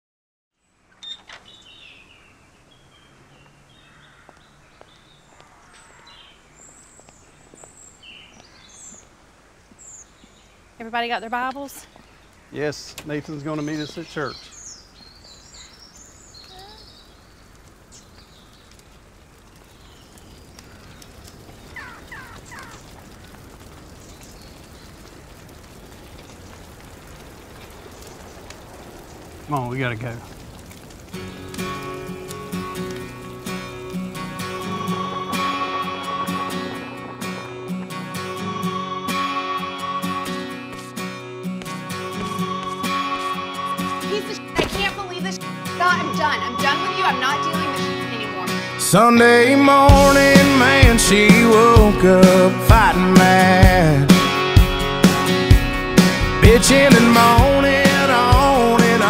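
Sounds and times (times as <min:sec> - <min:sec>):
outdoor background hiss: 0:00.6 - 0:59.0
bird calls: 0:00.8 - 0:18.8, 0:19.4 - 0:23.1, 0:23.8 - 0:26.6, 0:31.8 - 0:41.1
high falling chirps: 0:31.2 - 0:59.0.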